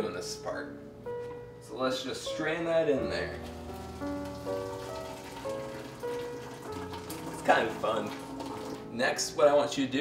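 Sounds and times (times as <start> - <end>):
background music of held notes: 0.0 - 10.0
puree pouring through strainer: 3.8 - 9.0.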